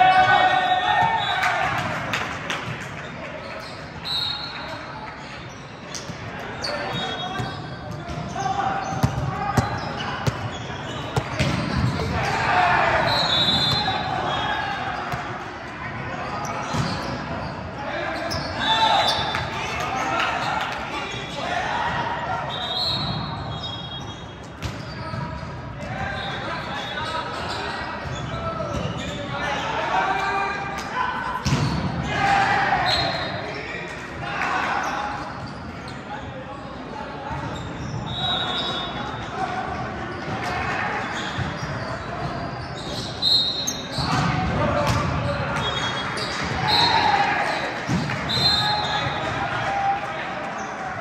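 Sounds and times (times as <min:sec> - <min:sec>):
volleyball bouncing on floor: 0:11.2 - 0:12.1.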